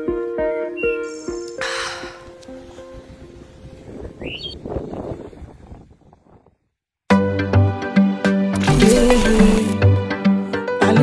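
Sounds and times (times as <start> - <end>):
wind noise on microphone: 2.6 - 6.7.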